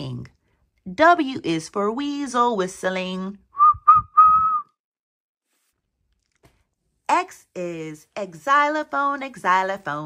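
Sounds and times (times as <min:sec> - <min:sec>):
person whistling: 0:03.5 - 0:04.8.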